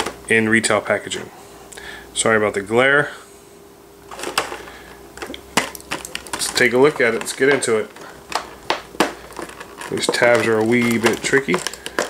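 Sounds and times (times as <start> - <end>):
plastic packaging rustle: 4.1 - 12.0.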